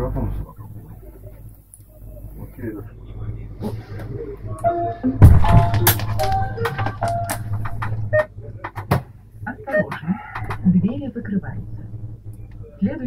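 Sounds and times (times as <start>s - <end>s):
steady low hum: 0.0s - 13.0s
heavy thump: 5.2s - 6.2s.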